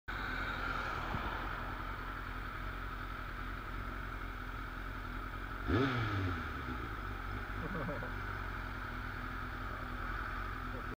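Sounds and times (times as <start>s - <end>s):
motorcycle engine idling: 1.5s - 10.9s.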